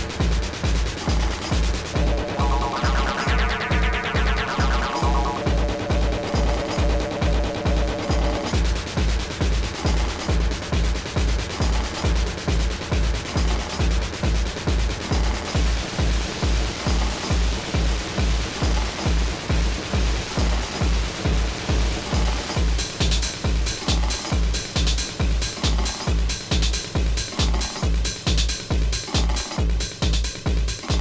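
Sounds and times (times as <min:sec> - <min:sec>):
techno kick drum beat: 0:00.0 - 0:31.0
synth pattern: 0:00.5 - 0:10.5
hissing noise wash: 0:01.4 - 0:08.6.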